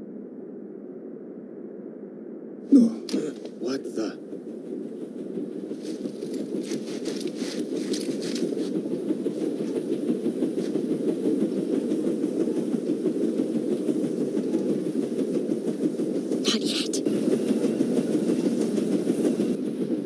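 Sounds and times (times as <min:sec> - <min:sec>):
train rumbling along rails: 0:02.7 - 0:20.0.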